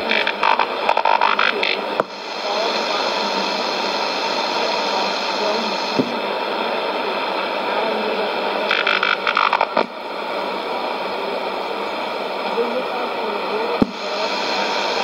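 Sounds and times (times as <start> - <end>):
radio crackle burst: 0.0 - 11.3, 13.7 - 15.0
faint radio voice: 0.0 - 15.0
radio static and hiss: 0.0 - 15.0.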